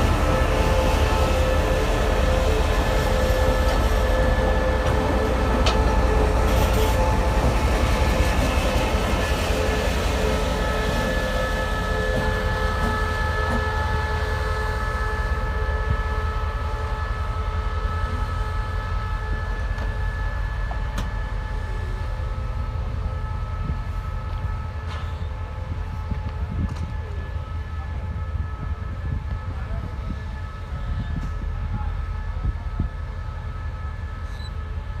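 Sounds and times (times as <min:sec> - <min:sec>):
locomotive engine rumble: 0:00.0 - 0:35.0
steady whining tones: 0:00.0 - 0:35.0.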